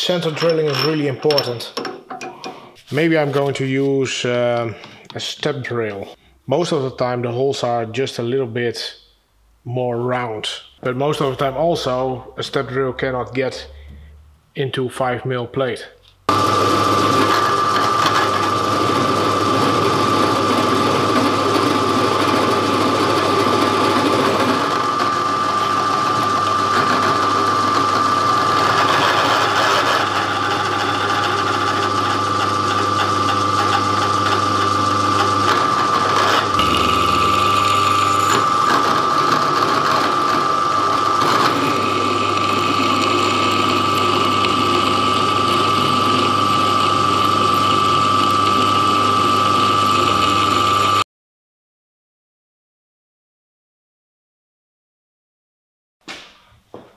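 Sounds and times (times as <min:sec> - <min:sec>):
drill bit cutting steel: 0:16.3 - 0:51.0
drill press whining: 0:16.3 - 0:51.0.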